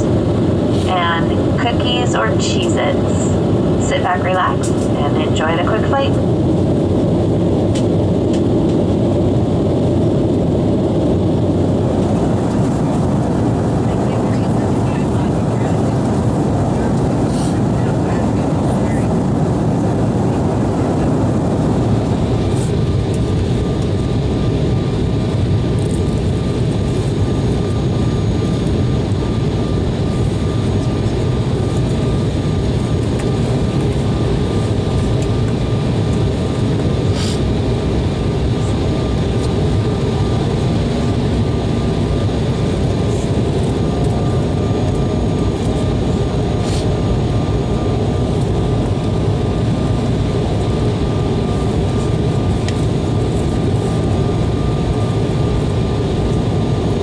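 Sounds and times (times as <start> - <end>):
airliner cabin roar: 0.0 - 57.0.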